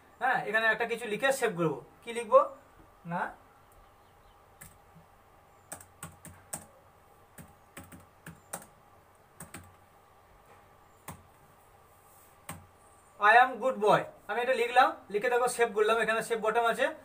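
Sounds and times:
keyboard keystrokes: 7.4s - 8.7s, 9.4s - 9.8s.

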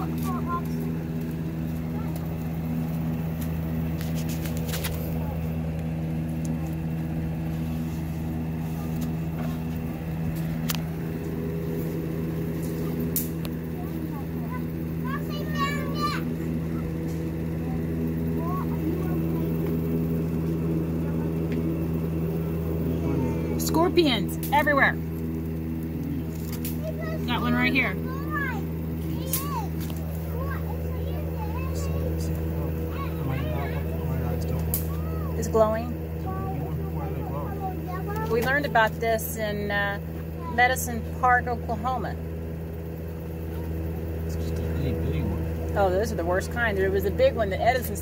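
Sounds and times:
low mechanical hum: 0.0s - 48.0s.

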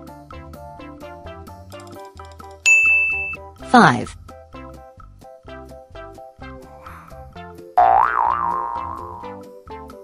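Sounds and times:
light children's music: 0.0s - 10.0s
cartoon boing sound effect: 7.8s - 9.4s.

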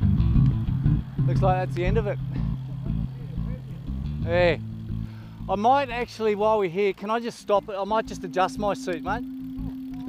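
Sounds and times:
bike tyres on pavement: 0.0s - 10.0s.

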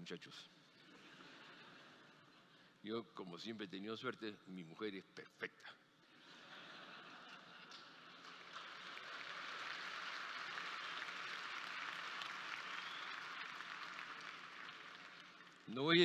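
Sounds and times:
audience applauding: 7.7s - 16.0s.

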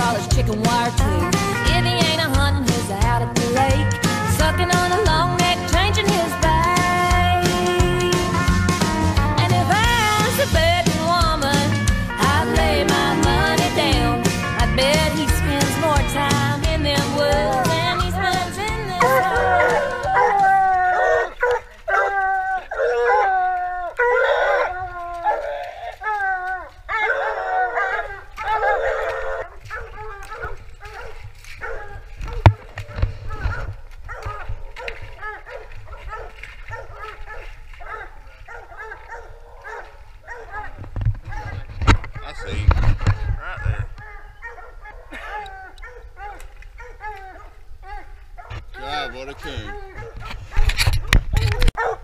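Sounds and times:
hounds barking: 17.2s - 52.0s
camera thumps and rustling: 29.5s - 44.6s, 49.9s - 51.9s.

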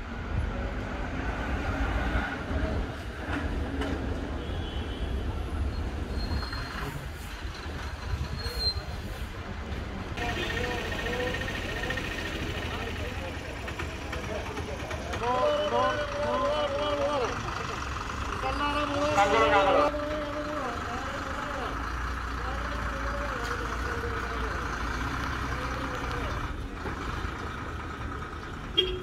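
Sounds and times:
bus diesel engines running: 0.0s - 29.0s
voices calling out: 10.2s - 29.0s.

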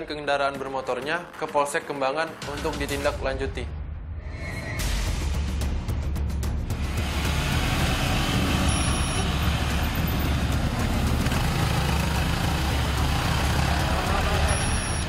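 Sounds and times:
motorcycles riding: 6.8s - 15.0s.

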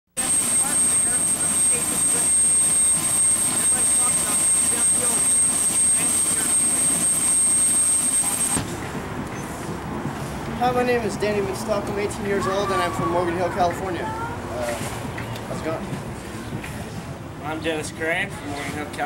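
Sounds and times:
steady high-pitched whine: 0.2s - 9.0s
crowd voices chattering: 0.2s - 19.0s.

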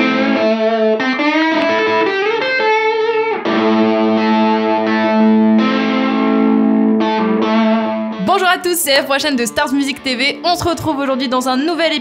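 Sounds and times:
electric guitar chords ringing: 0.0s - 12.0s.

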